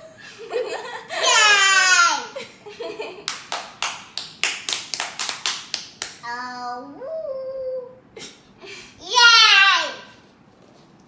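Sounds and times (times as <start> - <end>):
child exclaiming: 1.2 - 2.4, 9.0 - 10.2
hand clapping: 3.2 - 6.2.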